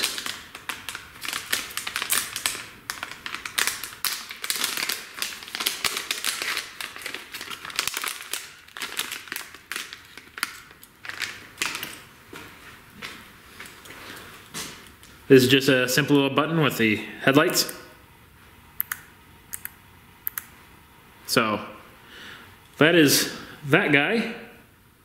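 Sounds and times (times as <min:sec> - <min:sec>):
plastic bag crinkling: 0:00.0 - 0:14.8.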